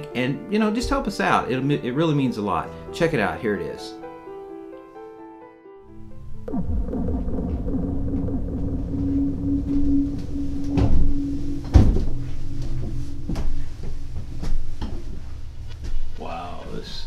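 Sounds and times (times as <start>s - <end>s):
low rumbling drone: 5.8s - 16.7s.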